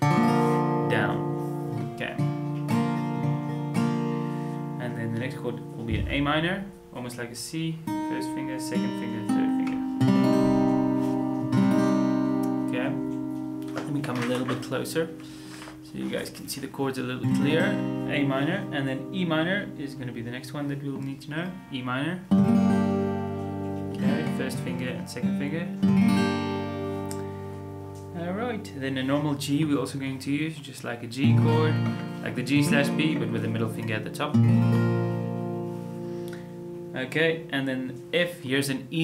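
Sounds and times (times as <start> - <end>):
acoustic guitar chord strummed: 0.0 - 7.2, 7.8 - 30.3, 31.2 - 39.0.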